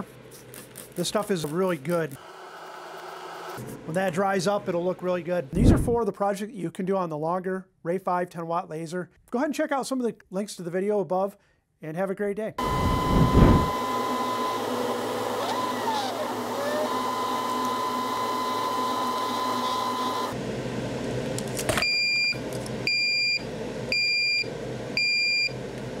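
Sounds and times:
laser engraver motors whining: 0:02.2 - 0:03.6, 0:12.6 - 0:20.4.

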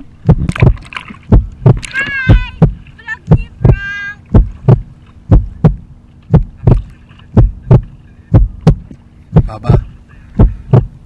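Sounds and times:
heartbeat thumps: 0:00.0 - 0:11.0
steady low hum: 0:00.0 - 0:11.0.

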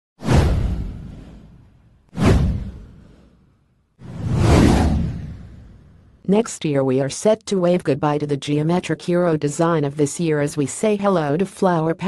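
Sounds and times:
whoosh sound effects: 0:00.2 - 0:06.1.

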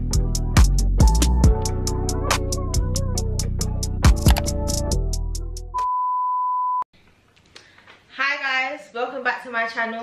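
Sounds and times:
upbeat intro music: 0:00.1 - 0:05.8.

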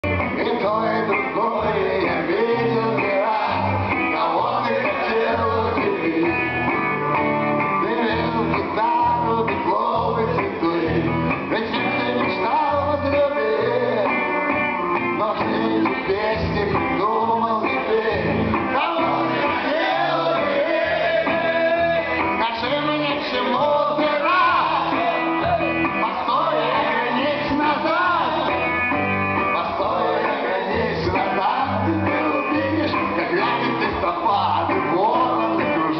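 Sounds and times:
man singing: 0:00.0 - 0:07.0, 0:07.6 - 0:35.9
bass notes: 0:00.0 - 0:35.9
electric guitar rock song: 0:00.0 - 0:35.9.

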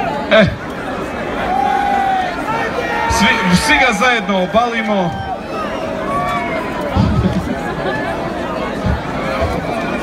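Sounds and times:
concert crowd noise: 0:00.0 - 0:10.0.

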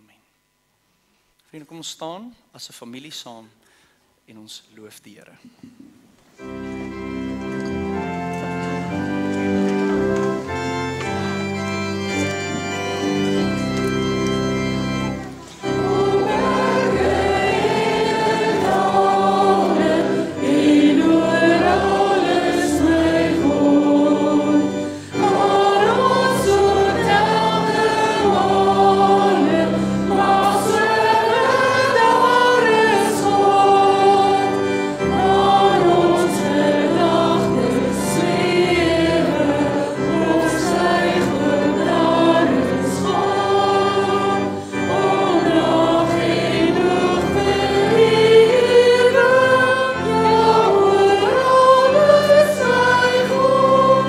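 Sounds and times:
guitar accompaniment: 0:06.3 - 0:54.0
sustained keyboard chords: 0:06.3 - 0:54.0.

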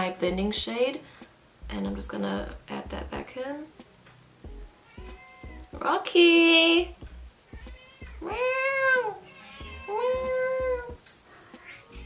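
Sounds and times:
cat meowing: 0:04.8 - 0:05.7, 0:07.5 - 0:11.0, 0:11.6 - 0:12.0.

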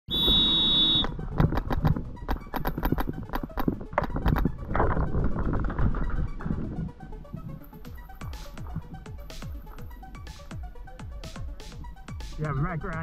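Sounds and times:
start buzzer: 0:00.1 - 0:01.2.

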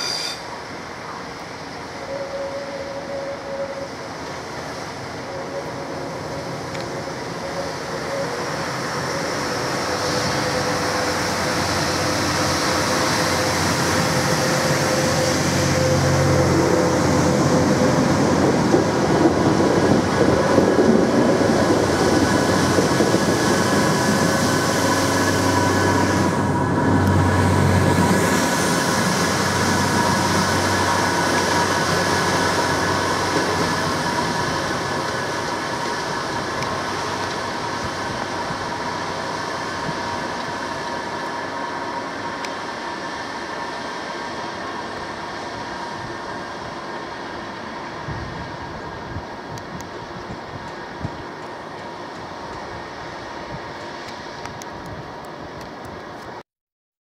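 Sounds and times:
diesel track machines running past: 0:00.0 - 0:56.4.

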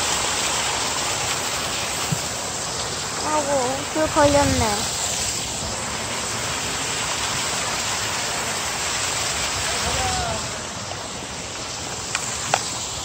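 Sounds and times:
wind on microphone: 0:03.9 - 0:05.8.

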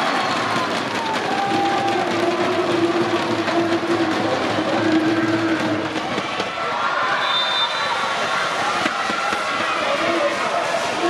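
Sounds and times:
crowd clapping: 0:00.0 - 0:07.1
crowd voices: 0:00.0 - 0:11.0.

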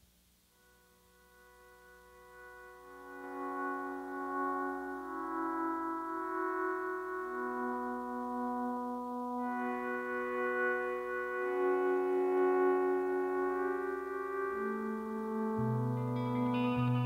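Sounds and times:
sustained ambient band chords: 0:00.5 - 0:17.0.

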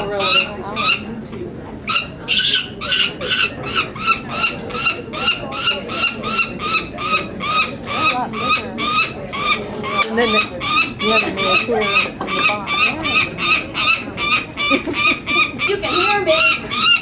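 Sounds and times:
falcon chick calling: 0:00.0 - 0:01.1, 0:01.9 - 0:17.0.

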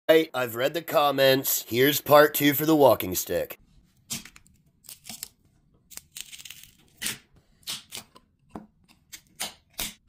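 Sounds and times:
packing tape tearing: 0:04.1 - 0:08.1.

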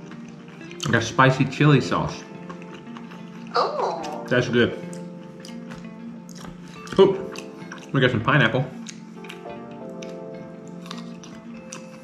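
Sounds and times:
close chewing of food: 0:00.0 - 0:08.0, 0:08.7 - 0:12.0
background music with held notes: 0:00.0 - 0:12.0.

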